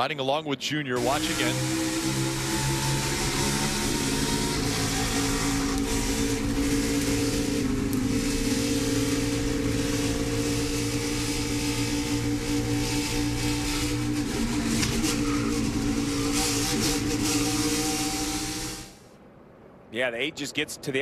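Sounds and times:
race car engine running hard: 0:01.0 - 0:19.0
rushing noise: 0:01.0 - 0:21.0.

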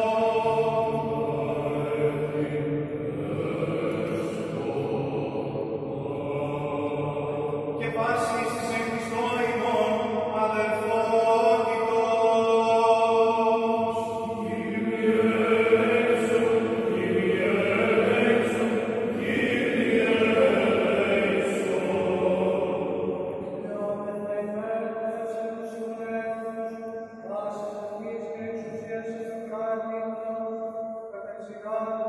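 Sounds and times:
voices chanting long notes: 0:00.0 - 0:09.9, 0:12.9 - 0:23.7.

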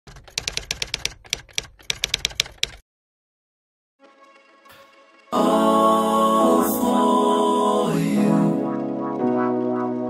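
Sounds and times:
sharp typewriter-like clicks: 0:00.1 - 0:02.8.

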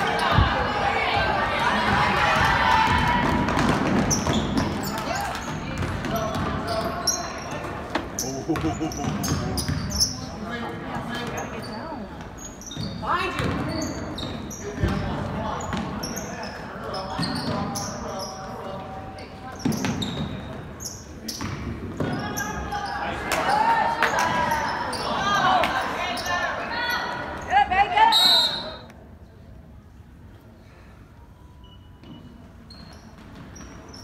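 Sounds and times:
voices echoing in a hall: 0:00.0 - 0:31.8
sneakers squeaking: 0:03.5 - 0:28.9, 0:31.6 - 0:34.0
referee's whistle: 0:28.1 - 0:28.9.

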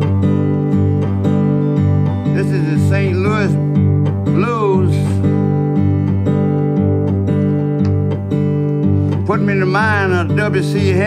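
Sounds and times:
acoustic guitar blues: 0:00.0 - 0:11.0
person's voice: 0:02.3 - 0:03.7, 0:04.3 - 0:05.4, 0:09.2 - 0:11.0.

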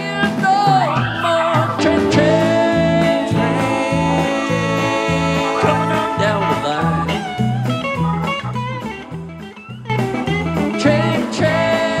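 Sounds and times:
bass line: 0:00.0 - 0:12.0
drums: 0:00.0 - 0:12.0
electric guitar lead: 0:00.0 - 0:12.0.

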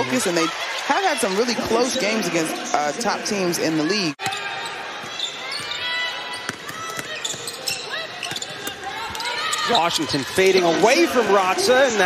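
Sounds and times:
sneakers squeaking: 0:04.2 - 0:10.7.

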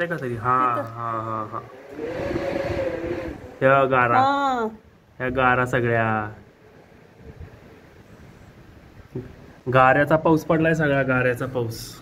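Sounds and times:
low buffeting: 0:00.0 - 0:12.0.

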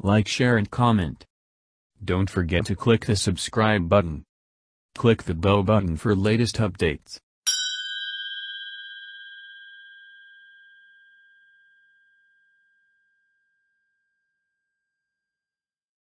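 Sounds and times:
bell ding ringing: 0:07.5 - 0:12.8.

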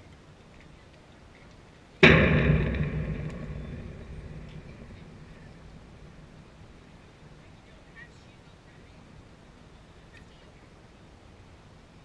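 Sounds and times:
loud ringing rattling impact: 0:02.0 - 0:06.7
low rumble: 0:02.0 - 0:06.8.

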